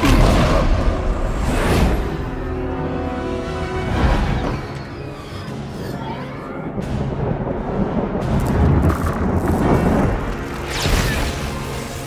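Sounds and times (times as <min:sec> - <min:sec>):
orchestral film score: 0:00.0 - 0:12.0
rumbling effects: 0:06.7 - 0:12.0
crackling electric lightning: 0:06.8 - 0:12.0.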